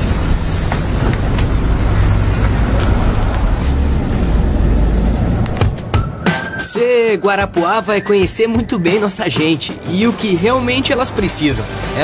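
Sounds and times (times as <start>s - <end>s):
bus engine rumble: 0.0s - 6.1s
street traffic noise: 0.0s - 12.0s.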